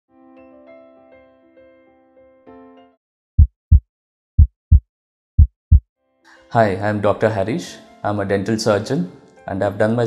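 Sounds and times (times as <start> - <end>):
heartbeat thumps: 3.4 - 3.8, 4.4 - 4.8, 5.4 - 5.8.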